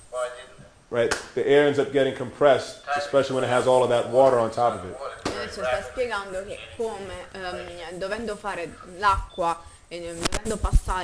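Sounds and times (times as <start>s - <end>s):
man speaking: 0.0s - 8.0s.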